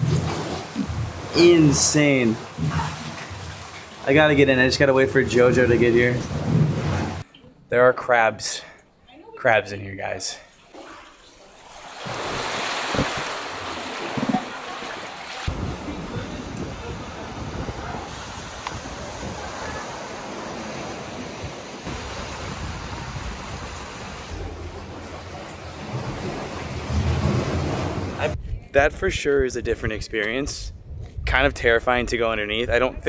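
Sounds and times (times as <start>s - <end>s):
surf washing over rocky shore: 12.0s - 25.2s
wind buffeting microphone: 15.5s - 20.3s.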